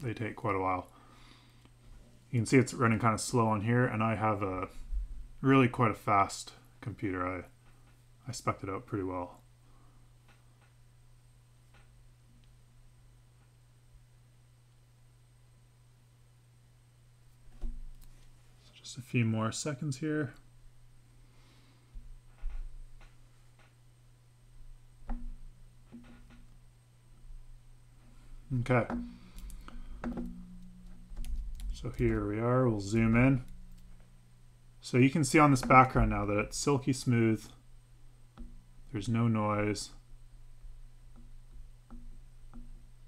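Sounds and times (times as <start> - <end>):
low electrical hum: 0.0 - 43.0
soft clicks and knocks: 11.6 - 12.6, 22.3 - 23.8, 25.0 - 26.6, 28.0 - 32.4.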